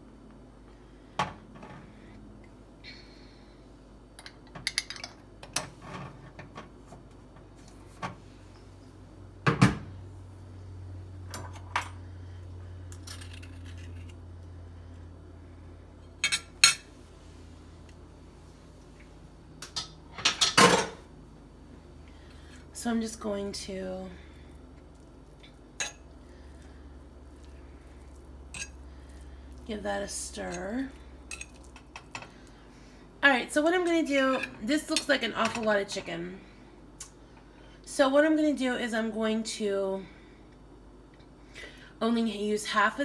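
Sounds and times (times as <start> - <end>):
low steady hum: 0.0 - 43.0.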